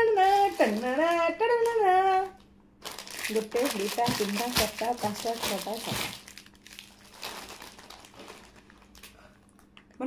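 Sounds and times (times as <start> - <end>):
wrapper crinkling and rustling: 0.0 - 1.8, 2.8 - 9.2.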